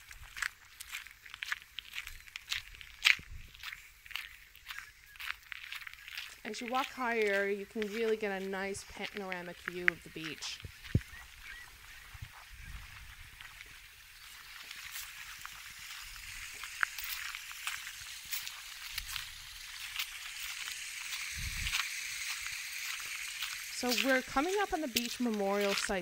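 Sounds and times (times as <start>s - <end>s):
footsteps on gravel: 0.0s - 26.0s
steady outdoor hiss: 0.0s - 26.0s
waterbirds calling: 0.0s - 26.0s.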